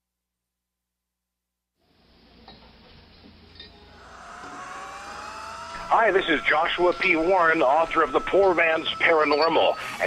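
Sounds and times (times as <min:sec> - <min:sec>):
rising sound-effect sweep: 0:03.9 - 0:10.0.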